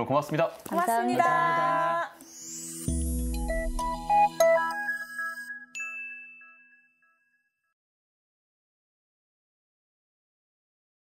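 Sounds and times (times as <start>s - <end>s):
bright chime-like notes: 2.2s - 7.8s.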